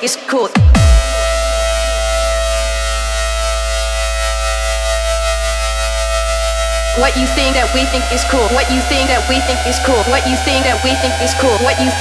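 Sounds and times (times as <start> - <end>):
deep bass drone: 0.7 - 12.0
sustained synthesizer chord: 0.8 - 12.0
siren-like held tone: 1.0 - 12.0.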